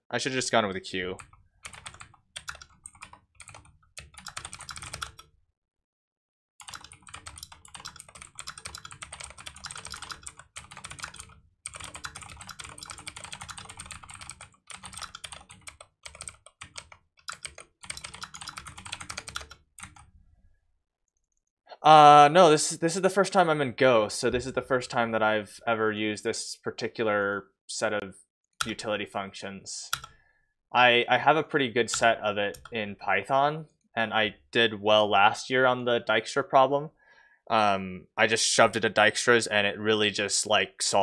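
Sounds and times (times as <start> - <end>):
computer keyboard typing: 1.2 - 5.3, 6.6 - 20.1, 29.9 - 30.2, 31.9 - 32.7.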